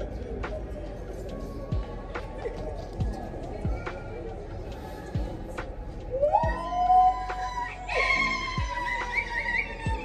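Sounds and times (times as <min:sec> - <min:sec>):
singing voices holding high notes: 0:06.0 - 0:10.0.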